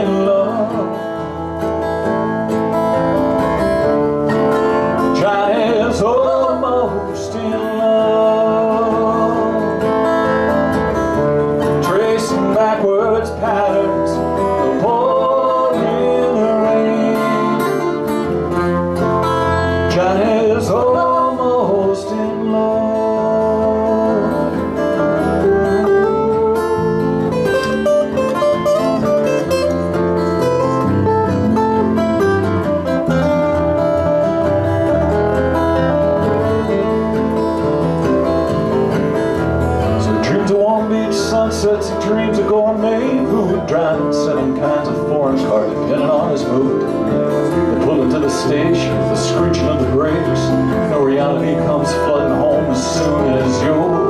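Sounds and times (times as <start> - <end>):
acoustic guitars strumming: 0.0 - 54.0
electric bass: 0.0 - 54.0
flute melody: 23.9 - 29.8.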